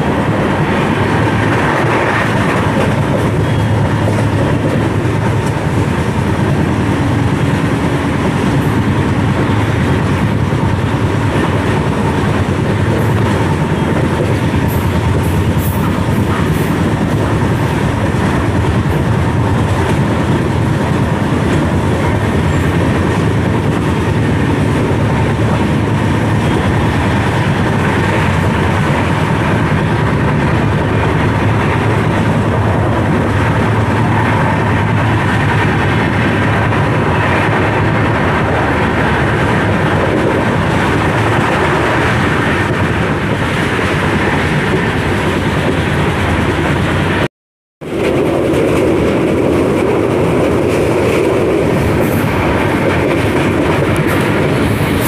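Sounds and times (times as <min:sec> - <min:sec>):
train wheels on track: 0:00.0 - 0:55.0.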